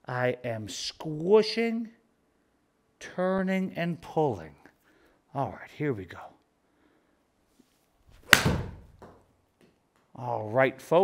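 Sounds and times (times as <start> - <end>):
golf club striking ball: 8.2 - 9.2.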